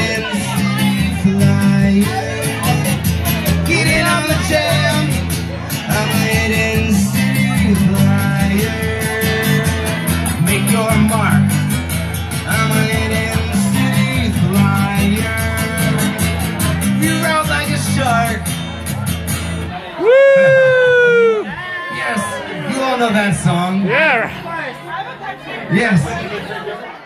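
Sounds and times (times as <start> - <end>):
man singing: 0.0 - 18.5
acoustic guitar strumming: 0.0 - 19.8.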